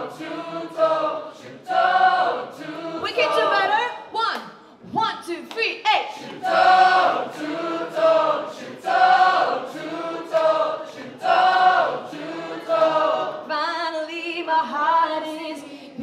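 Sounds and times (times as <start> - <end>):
voices singing together: 0.0 - 3.9, 6.1 - 15.3.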